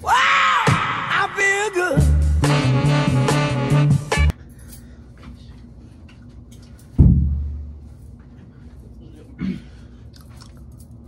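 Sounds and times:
heavy thump on microphone: 7.0 - 7.6.

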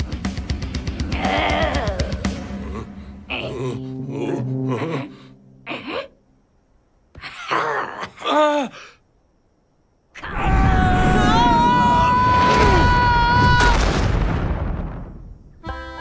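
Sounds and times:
cartoon character groaning: 1.1 - 6.2.

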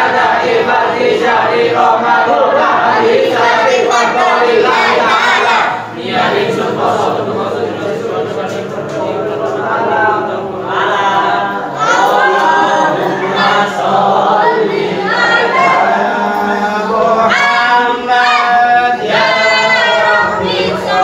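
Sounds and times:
group singing without instruments: 0.0 - 21.0.

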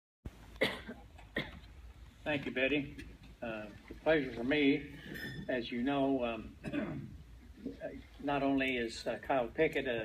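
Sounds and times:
person coughing: 0.6 - 1.7, 6.6 - 7.1.

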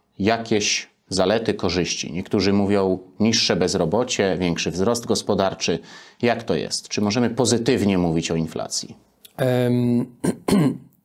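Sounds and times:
man speaking: 0.1 - 10.8.

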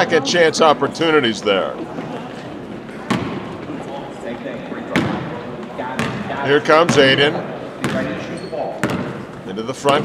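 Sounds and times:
faint background voices: 0.0 - 8.8
basketball bouncing on wood floor: 3.1 - 3.4, 5.0 - 5.3, 6.0 - 7.1, 7.8 - 8.2, 8.8 - 9.3.

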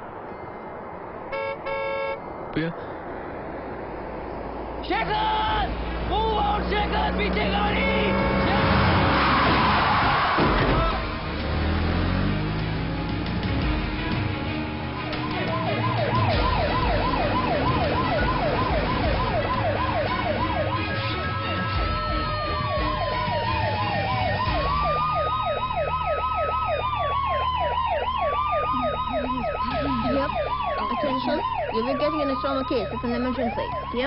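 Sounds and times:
wailing siren: 5.1 - 13.2, 14.6 - 34.0
fast warbling siren yelp: 15.0 - 34.0.

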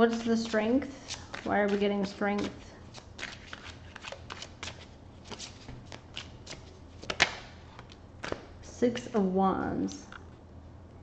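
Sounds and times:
cards being shuffled: 0.1 - 8.5.

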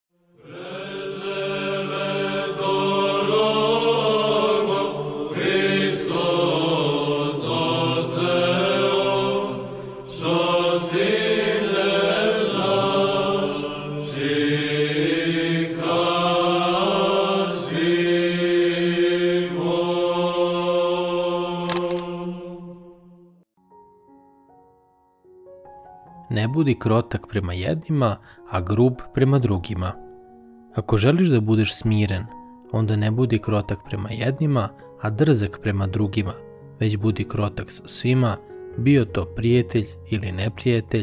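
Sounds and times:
voices chanting: 0.4 - 22.7
sharp click: 21.7 - 22.1.

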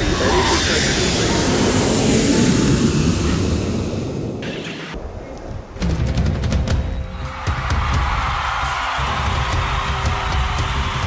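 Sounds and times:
jet engines in flight: 0.0 - 5.0
rushing air: 0.0 - 5.1.

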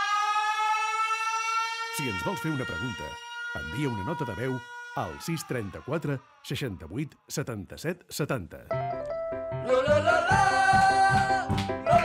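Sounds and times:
rising siren-like wail: 0.0 - 6.6.

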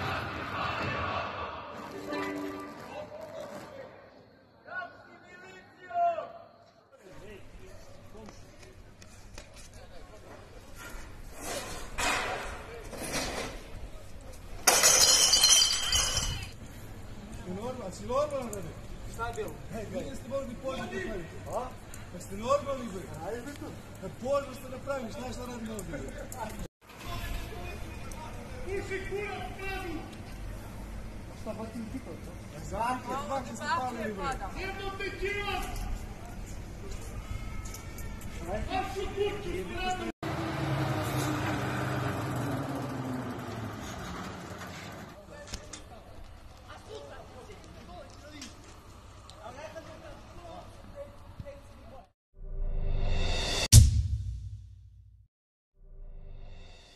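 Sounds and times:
glass breaking and tinkling: 14.7 - 16.5.

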